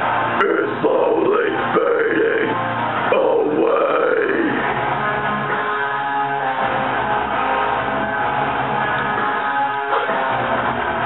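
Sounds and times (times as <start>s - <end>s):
harsh screamed vocals: 0.0s - 4.8s
heavy rock backing track: 0.0s - 11.0s.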